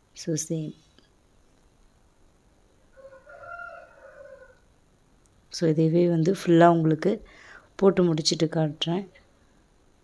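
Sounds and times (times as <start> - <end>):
rooster crowing faintly: 2.9 - 4.8.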